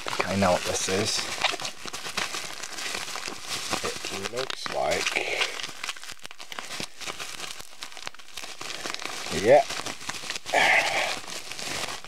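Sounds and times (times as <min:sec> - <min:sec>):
bubble wrap crackling: 0:00.0 - 0:12.0.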